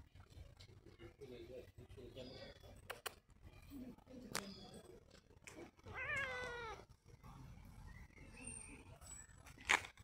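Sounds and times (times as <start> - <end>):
cat meowing: 5.9 - 6.9.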